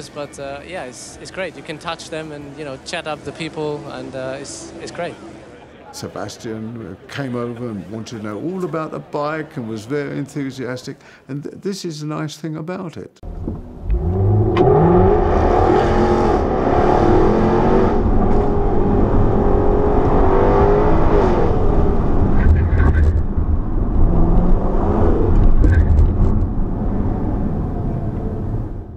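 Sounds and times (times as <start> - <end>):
racing car engines revving: 13.4 - 28.9.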